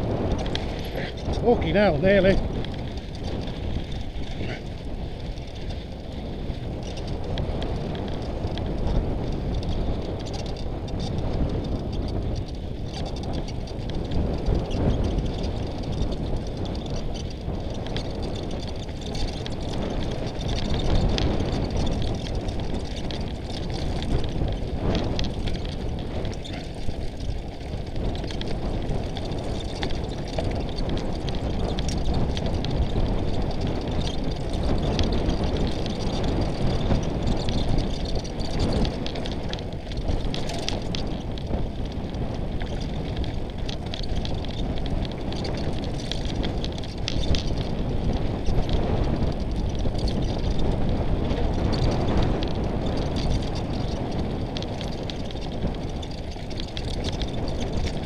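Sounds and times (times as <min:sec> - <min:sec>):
tyres crunching over gravel: 0:00.0 - 0:05.9
bike rattling over rocks: 0:00.0 - 0:58.0
wind noise on microphone: 0:00.0 - 0:58.0.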